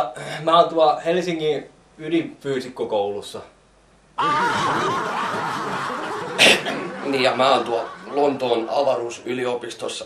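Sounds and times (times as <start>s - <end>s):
laughter: 4.2s - 9.2s.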